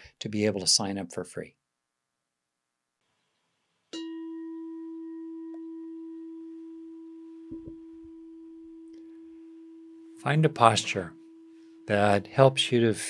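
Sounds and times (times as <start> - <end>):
meditation bell ringing: 4.0 - 13.0
soft low knock: 7.5 - 7.8.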